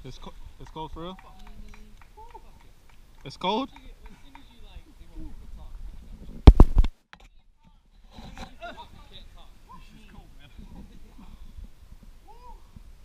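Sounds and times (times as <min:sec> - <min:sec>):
loud thumps: 0:06.4 - 0:06.9.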